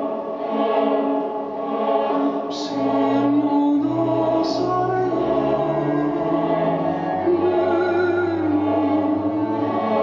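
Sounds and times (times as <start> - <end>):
choir singing sustained chords: 0.0 - 10.0.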